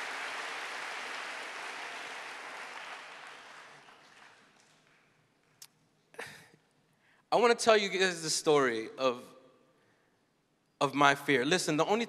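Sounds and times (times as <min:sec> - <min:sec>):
audience applause: 0:00.0 - 0:05.1.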